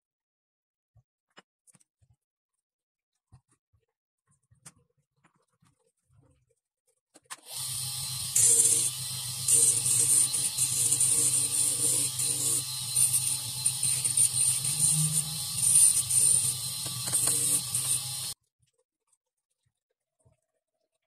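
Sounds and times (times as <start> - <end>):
bench motor humming: 7.5 - 18.4
high grinding hiss: 7.5 - 18.4.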